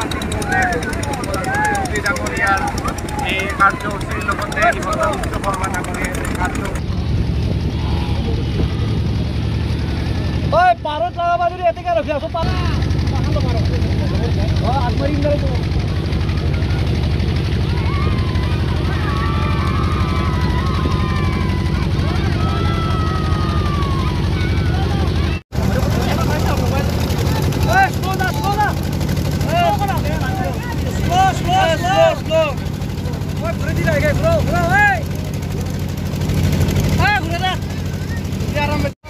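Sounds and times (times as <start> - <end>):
people calling out: 0.0 - 6.8, 17.6 - 25.4, 27.0 - 35.1
boat engine throbbing: 0.0 - 39.0.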